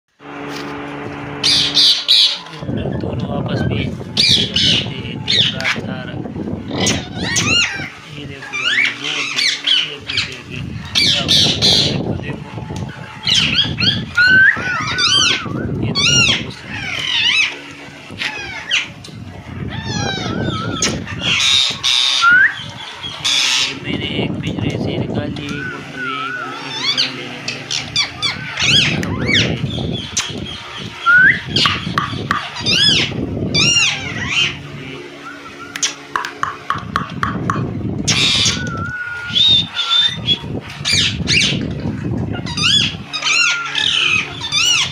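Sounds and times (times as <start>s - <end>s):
parakeet harsh screeches: 1.4s - 2.4s, 4.2s - 5.8s, 6.7s - 12.0s, 13.1s - 18.9s, 19.6s - 23.8s, 26.0s - 34.6s, 38.1s - 41.6s, 42.3s - 44.9s
parakeet whistled chirps: 13.2s - 17.5s, 19.9s - 23.7s, 28.0s - 34.6s, 38.1s - 41.6s, 42.5s - 44.9s.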